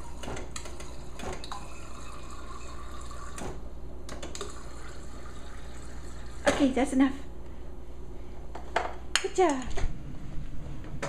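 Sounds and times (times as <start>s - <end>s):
water dispenser running into cup: 0.0s - 3.6s, 4.2s - 6.7s.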